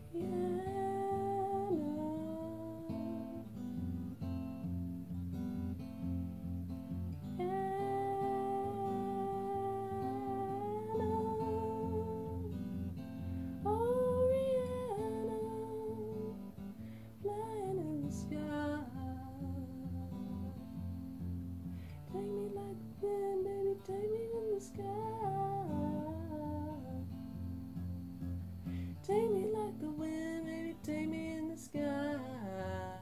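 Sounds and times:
acoustic guitar: 0.0 - 33.0.

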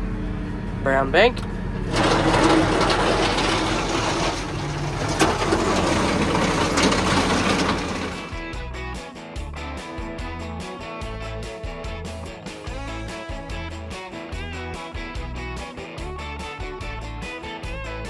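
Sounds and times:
feed wagon machinery running: 0.4 - 8.6
background music with a beat: 8.2 - 18.0.

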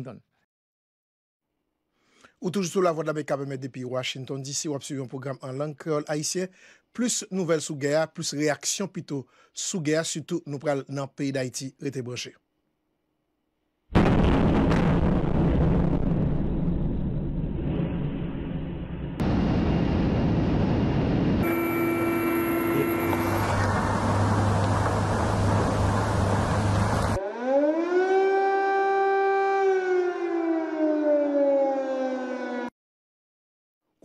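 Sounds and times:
rough rushing explosion noise: 13.9 - 21.8, 22.9 - 27.2
air-raid siren wailing: 21.4 - 32.7.

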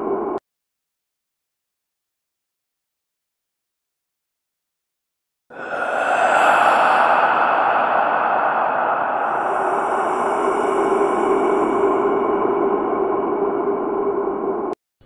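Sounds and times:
dense rushing drone: 5.5 - 14.8.

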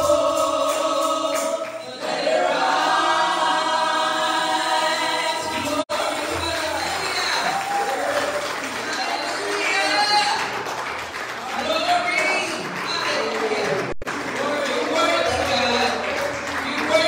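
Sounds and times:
congregation singing worship song: 0.0 - 17.0.

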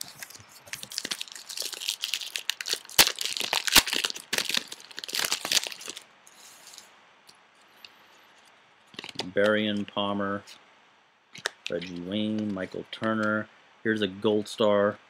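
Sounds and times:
wrapper tearing and crinkling: 0.0 - 6.0, 8.9 - 9.3
sharp cracks of wrapper: 0.2 - 6.0, 11.4 - 11.8.

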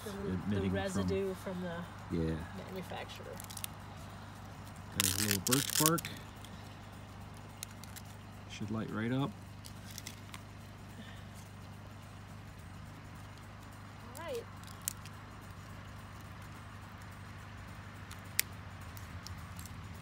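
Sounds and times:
low hum: 0.0 - 20.0
kindling being handled: 5.0 - 6.1.

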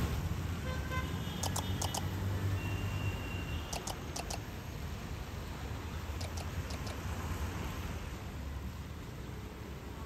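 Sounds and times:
street traffic rumbling: 0.0 - 10.0
sharp clicks: 1.4 - 2.2, 3.7 - 4.5, 6.2 - 7.0.

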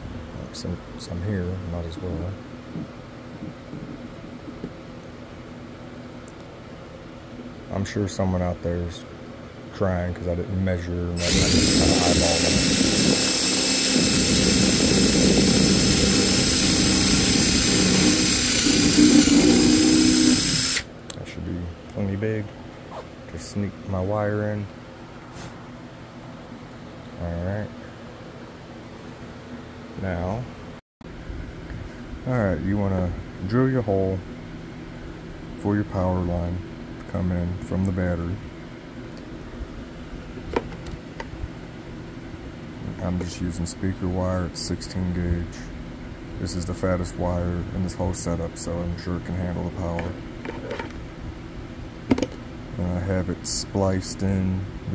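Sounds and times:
steady low hum: 0.0 - 54.9
power drill boring through plastic: 11.2 - 20.9.

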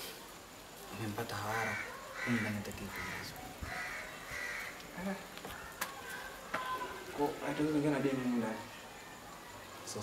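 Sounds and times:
bird calling: 1.5 - 4.9.

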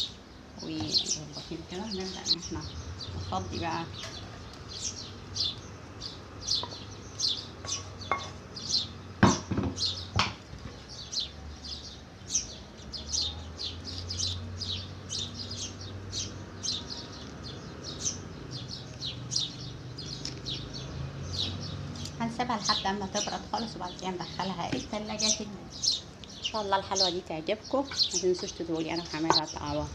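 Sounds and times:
small bird chirping: 0.0 - 29.9
sharp knocks: 9.2 - 10.4.

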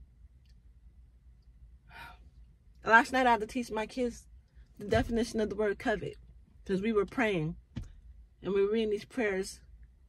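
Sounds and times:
faint low hum: 0.0 - 10.0
woman speaking: 2.8 - 7.6, 8.4 - 9.7.

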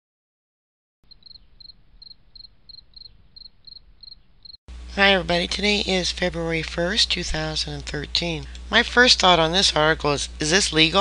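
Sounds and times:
cricket chirping: 1.1 - 4.6.

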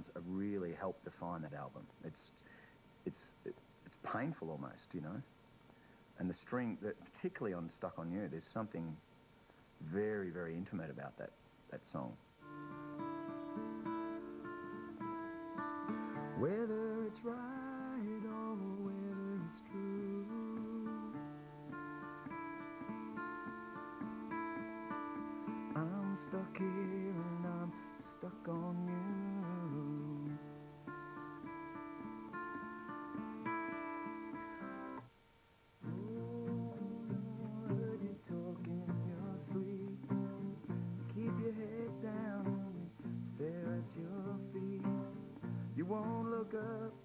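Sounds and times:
acoustic guitar chords: 12.0 - 35.1, 35.8 - 47.0.

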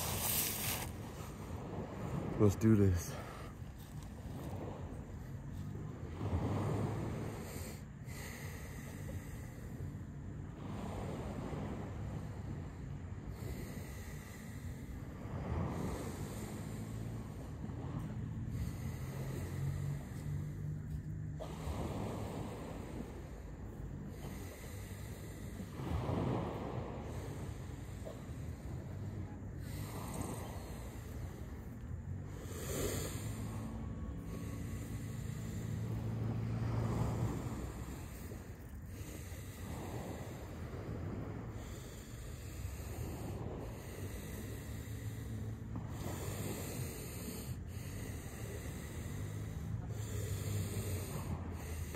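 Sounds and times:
man breathing forcefully: 21.4 - 51.9.

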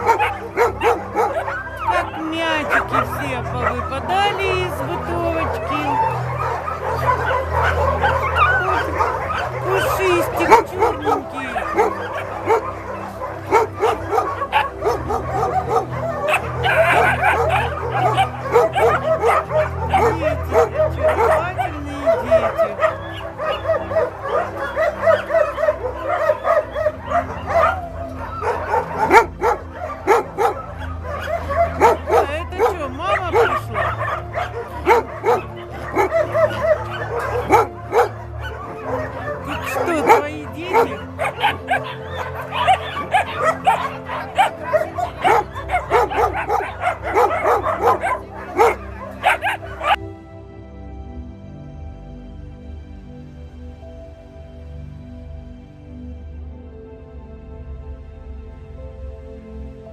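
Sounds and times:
puppies barking and yipping: 0.0 - 50.0.

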